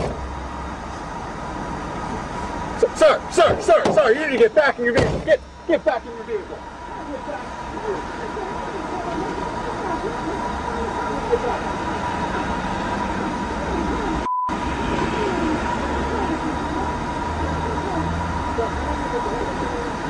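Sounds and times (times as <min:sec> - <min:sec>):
muffled men arguing: 0:02.7 - 0:14.2.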